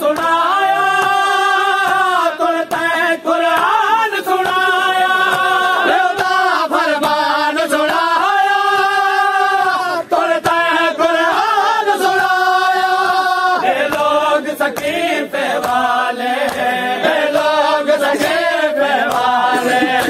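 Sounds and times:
men chanting in unison: 0.0s - 20.0s
hands slapping on chest: 0.1s - 7.3s, 13.7s - 20.0s.

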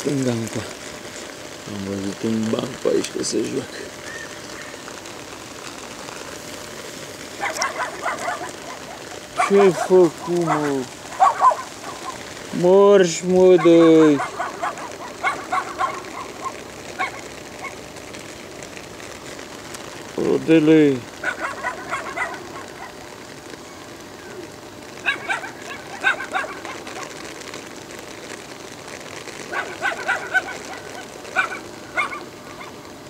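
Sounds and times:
steady background hiss: 0.0s - 33.0s.

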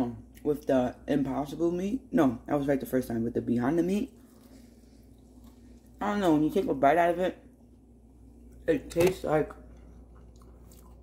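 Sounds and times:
person chewing food: 4.2s - 6.0s, 9.6s - 11.0s.

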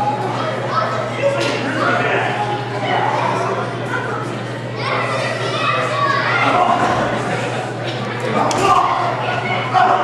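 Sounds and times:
crowd chatter and shouts: 0.0s - 10.0s
low electrical hum: 0.0s - 10.0s.

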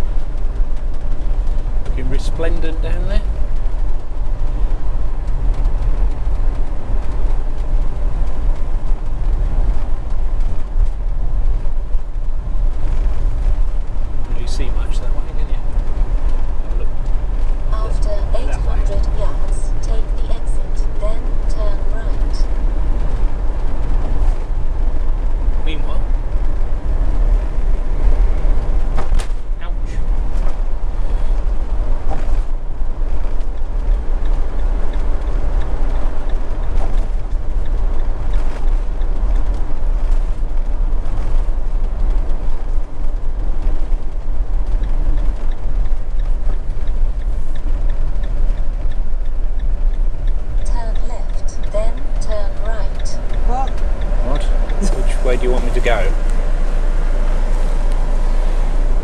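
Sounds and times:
tyre and wind noise: 0.0s - 50.9s
road and engine rumble: 0.0s - 59.0s.

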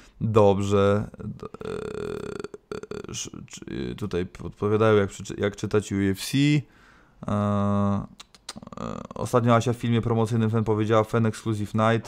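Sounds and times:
man's hesitation sound: 0.9s - 4.0s
man's rough crackling vocal: 1.1s - 3.8s, 7.2s - 9.2s.

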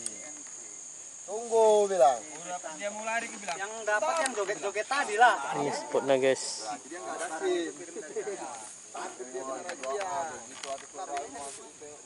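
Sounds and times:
high-pitched hiss: 0.0s - 12.0s
indistinct voices talking: 0.0s - 12.0s
small clicks: 9.6s - 11.3s.

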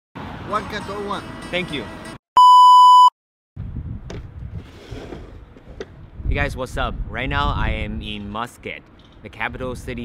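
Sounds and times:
electronic beep: 2.4s - 3.1s.

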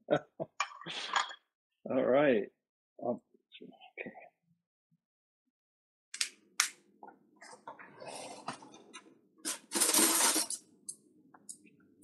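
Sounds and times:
tableware clatter: 8.3s - 10.6s.

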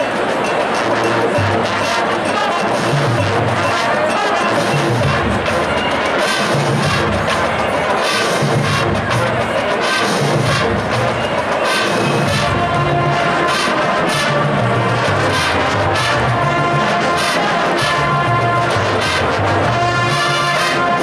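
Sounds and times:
marching band playing jazz: 0.0s - 21.0s.

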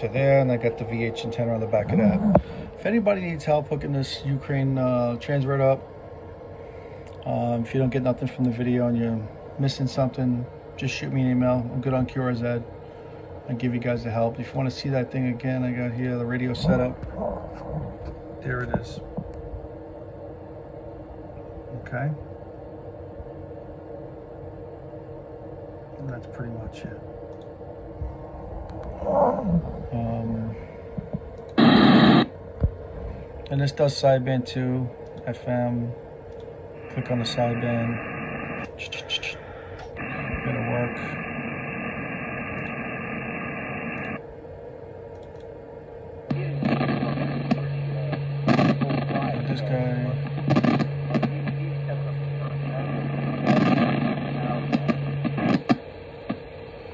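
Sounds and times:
man's voice over radio: 0.0s - 5.8s, 13.5s - 17.1s, 18.4s - 19.0s, 29.9s - 30.8s, 36.8s - 44.2s, 46.3s - 55.8s
radio hiss: 0.0s - 5.8s, 6.7s - 19.2s, 21.7s - 22.2s, 29.2s - 36.0s, 36.8s - 44.3s, 46.3s - 56.9s
electrical hum and rumble: 0.0s - 56.9s.

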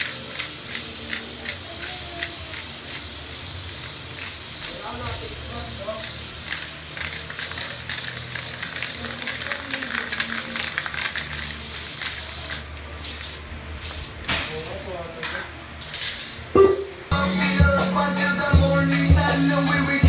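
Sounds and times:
spray paint can hissing: 0.0s - 14.8s, 18.3s - 20.0s.

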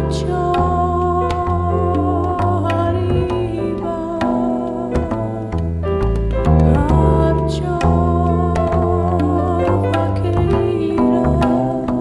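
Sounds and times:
double bass notes: 0.0s - 12.0s.

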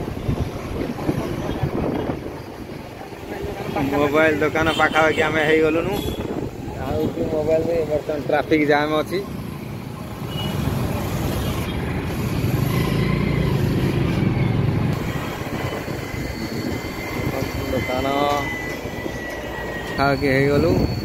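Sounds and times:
road and wind noise: 0.0s - 21.0s.

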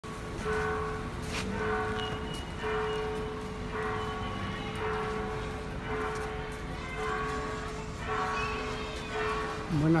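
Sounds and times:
church bell ringing: 0.2s - 10.0s.

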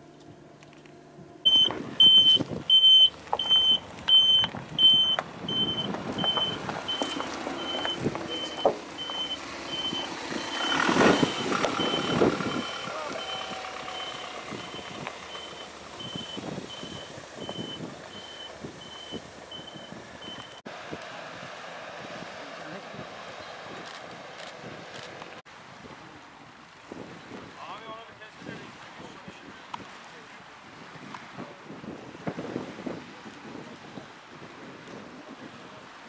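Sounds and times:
van engine running: 0.0s - 25.4s
reversing alarm beeping: 1.5s - 20.6s.

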